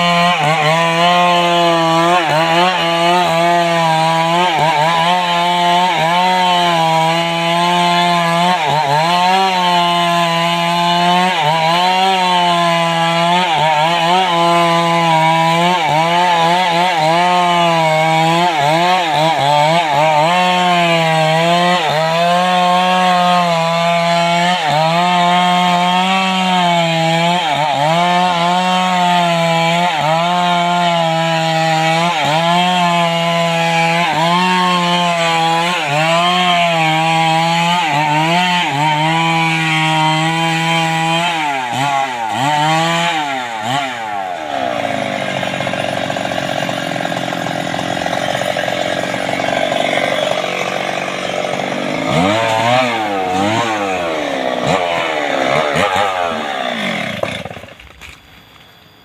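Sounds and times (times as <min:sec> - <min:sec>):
chainsaw revving: 0:00.0 - 0:58.2
chainsaw cutting log: 0:00.0 - 0:58.7.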